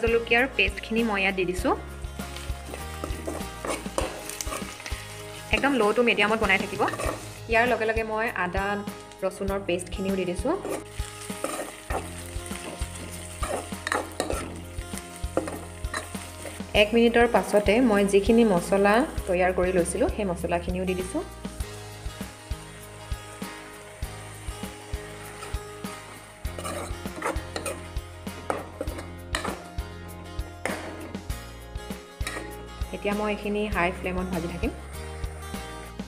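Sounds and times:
background music: 0.0 - 36.0
onions sizzling in oil: 0.0 - 36.0
spatula scraping metal pan: 2.2 - 7.4, 10.5 - 16.6, 23.4 - 29.7, 32.2 - 32.6.

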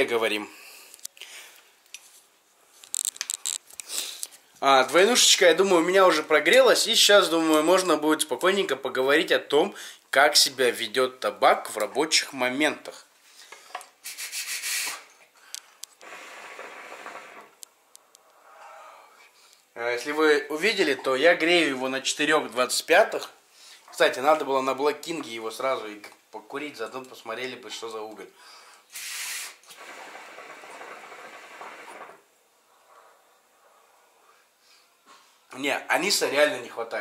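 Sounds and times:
hookah draw hissing: 14.0 - 15.1, 28.9 - 35.3.

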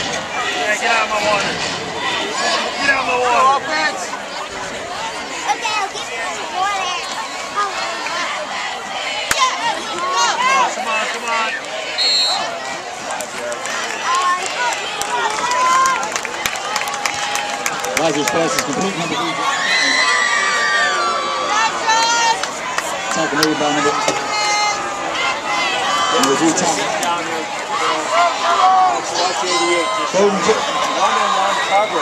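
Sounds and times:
crowd talking and shouting: 0.0 - 32.0.

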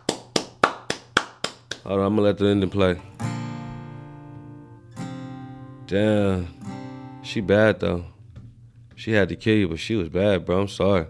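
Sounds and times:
rhythmic sharp taps: 0.0 - 1.9
man speaking: 5.9 - 6.6, 7.3 - 8.2, 9.0 - 11.0.

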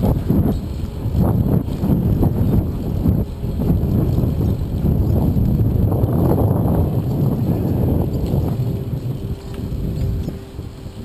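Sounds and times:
bicycle road noise: 0.0 - 11.0
wind buffeting microphone: 0.0 - 11.0.

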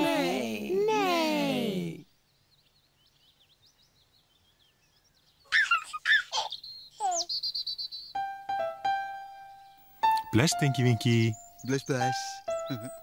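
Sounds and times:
faint birdsong chirping: 2.0 - 13.0
baby giggling and cooing: 5.5 - 7.3.

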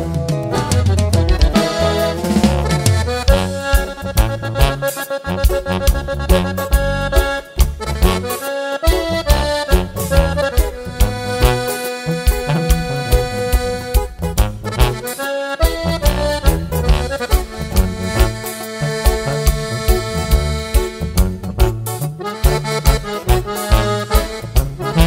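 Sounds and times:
accordion melody: 0.0 - 25.0
bass line: 0.0 - 25.0
steady drum beat: 0.0 - 25.0.

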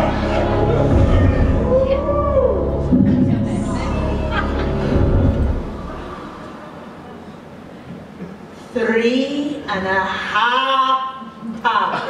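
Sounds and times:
deep rumble: 0.0 - 6.7.

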